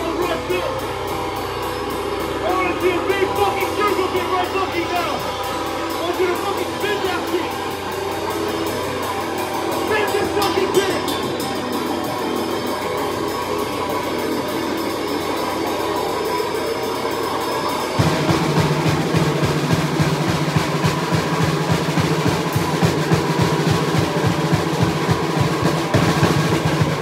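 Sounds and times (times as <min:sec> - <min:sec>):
live heavy band playing: 0:00.0 - 0:27.0
rapid drum strokes: 0:00.0 - 0:27.0.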